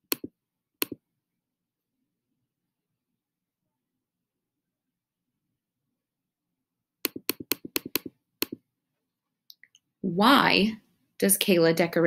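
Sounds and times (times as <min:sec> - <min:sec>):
computer mouse clicks: 0:00.0 - 0:01.0, 0:07.0 - 0:08.6.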